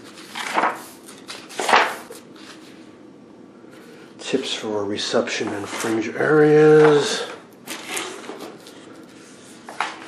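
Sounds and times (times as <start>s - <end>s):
paper pages turning: 0.0s - 2.8s, 5.4s - 10.0s.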